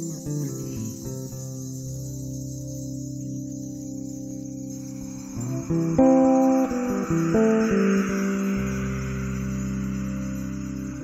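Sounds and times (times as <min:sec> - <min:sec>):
electric bass guitar chord: 0:03.3 - 0:11.0.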